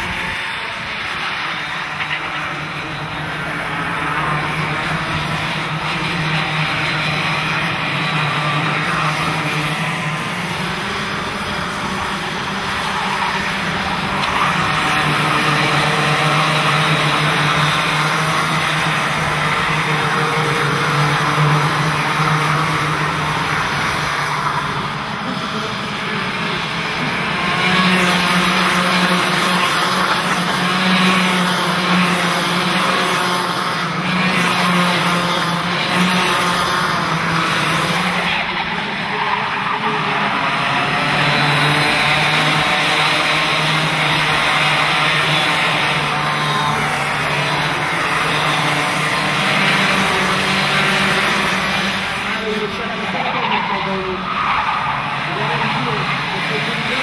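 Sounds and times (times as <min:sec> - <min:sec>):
racing kart engines whining: 0:00.0 - 0:57.0.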